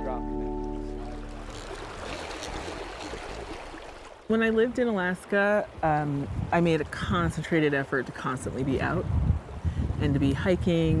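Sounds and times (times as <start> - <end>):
background music: 0.0 - 1.4
river water rushing: 0.7 - 4.4.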